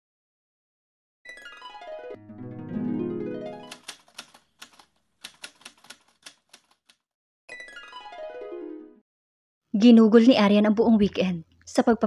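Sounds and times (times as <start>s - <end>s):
typewriter key clicks: 3.7s - 7.0s.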